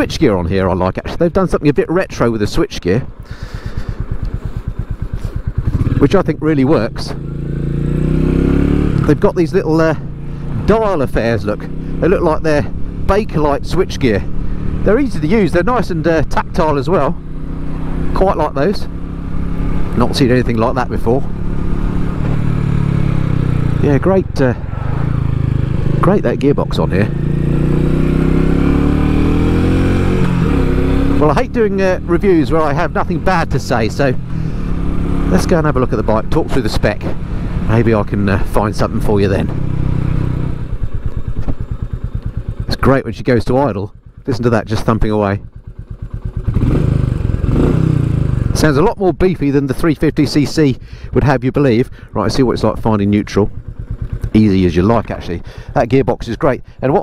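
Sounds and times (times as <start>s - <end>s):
motorcycle engine accelerating: 0.0s - 57.0s
motorcycle engine thumping: 3.1s - 6.0s, 18.9s - 23.9s, 36.2s - 42.7s, 44.0s - 48.5s, 53.4s - 55.7s.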